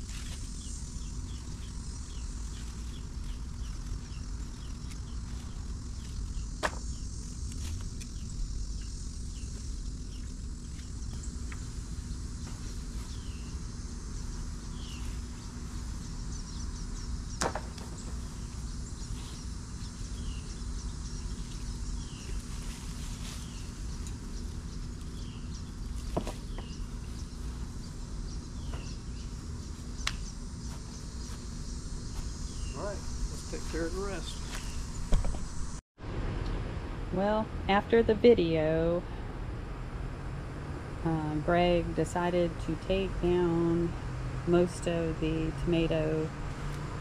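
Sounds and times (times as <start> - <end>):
insects droning: 0.0 - 47.0
bird chirping: 32.5 - 35.7
low rumble: 32.8 - 41.8.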